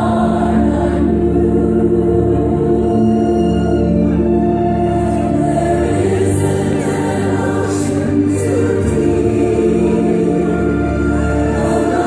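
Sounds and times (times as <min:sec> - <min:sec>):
choir singing: 0:00.0 - 0:12.0.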